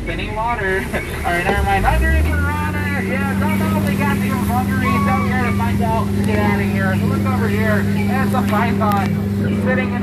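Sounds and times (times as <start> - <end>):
boat motor humming: 0.0 - 10.0
person talking: 0.0 - 10.0.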